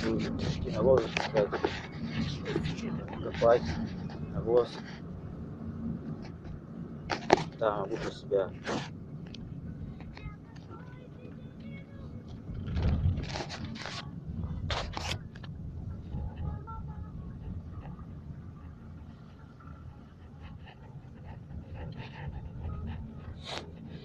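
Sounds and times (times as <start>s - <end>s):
rustles or breaths close to microphone: 0.0s - 5.1s
low rumble of car cabin: 0.0s - 24.0s.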